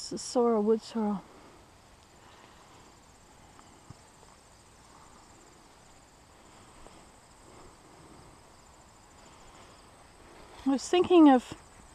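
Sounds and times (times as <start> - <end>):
insect chirring trill: 0.0 - 11.9.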